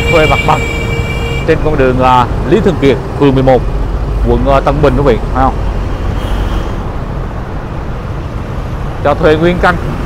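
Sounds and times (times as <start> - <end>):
street traffic rumble: 0.0 - 10.0.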